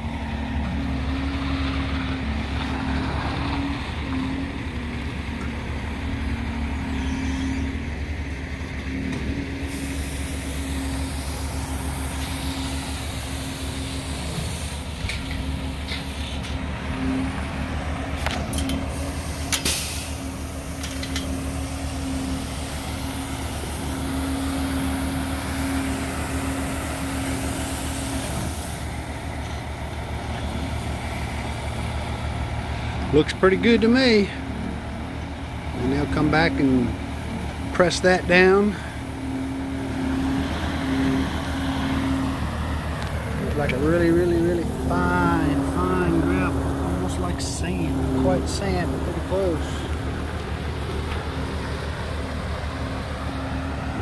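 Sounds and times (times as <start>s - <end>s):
diesel engines running: 0.0s - 54.0s
short hissing: 9.6s - 15.0s, 18.9s - 28.9s.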